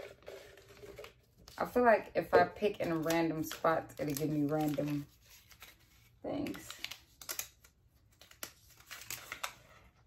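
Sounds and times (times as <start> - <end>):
paper crackling being unfolded: 2.7 - 10.0.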